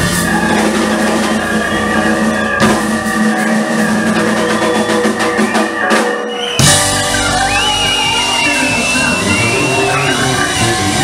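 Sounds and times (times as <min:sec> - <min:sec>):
bass: 0:00.0 - 0:11.0
drum kit: 0:00.0 - 0:11.0
jazz-funk band playing: 0:00.0 - 0:11.0.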